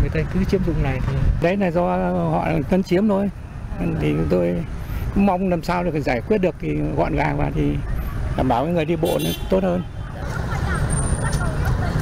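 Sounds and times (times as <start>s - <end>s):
road traffic rumble: 0.0s - 12.0s
distant voices chatter: 2.5s - 12.0s.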